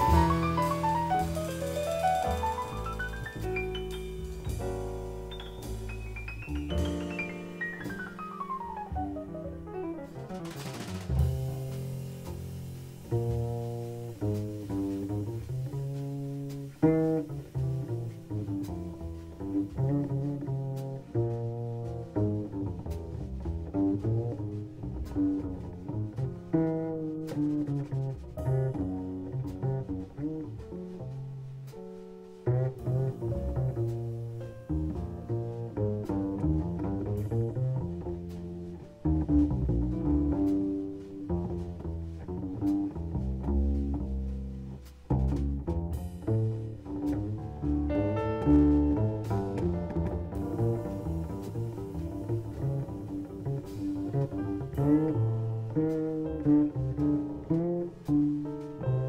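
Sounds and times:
descending piano run: 0.0 - 59.0
plucked double bass: 0.0 - 59.0.

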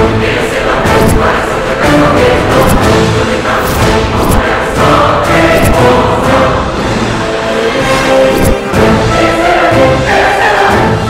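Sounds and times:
choir singing: 0.0 - 11.0
dramatic orchestral music: 0.0 - 11.0.

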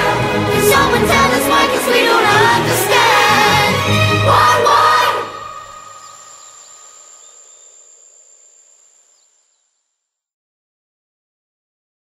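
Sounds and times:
boy and choir singing: 0.0 - 7.1.

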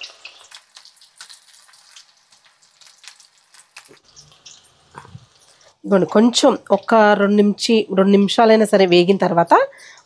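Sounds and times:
oil popping: 0.0 - 7.2
batter sizzling in hot oil: 0.0 - 10.0.

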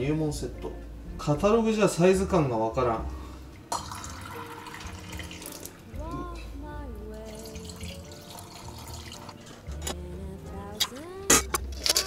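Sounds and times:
water pouring through funnel: 3.7 - 5.8, 7.3 - 9.6.

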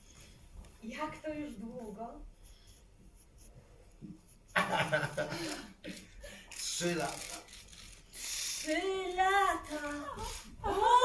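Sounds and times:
faint rustling and scratching: 0.0 - 5.2.

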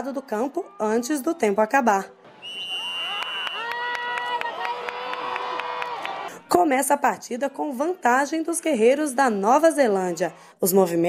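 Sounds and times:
crowd shouting and cheering: 0.0 - 6.5, 9.3 - 10.4
high steady whistle-like tone: 2.4 - 3.8
sharp claps: 3.0 - 6.2.

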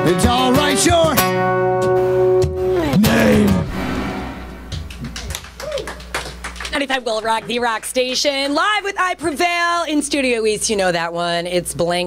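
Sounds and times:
acoustic guitar chord: 1.2 - 5.2
audience clapping: 4.6 - 8.5
vocal whoop: 5.6 - 6.0.

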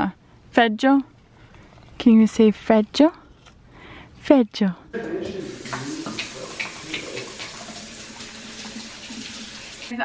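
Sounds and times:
faucet running into steel sink: 5.2 - 9.9
hands washing under water: 5.2 - 9.9.

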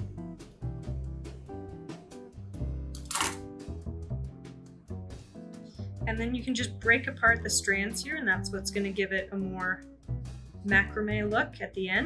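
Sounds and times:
bossa nova music: 0.0 - 11.8.

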